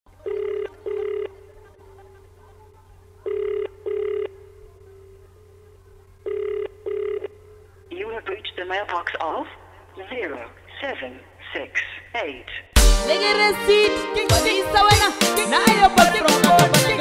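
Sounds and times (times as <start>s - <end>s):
faint steady hum: 0.1s - 12.8s
telephone ringback tone: 0.2s - 1.4s, 3.3s - 4.4s, 6.2s - 7.6s.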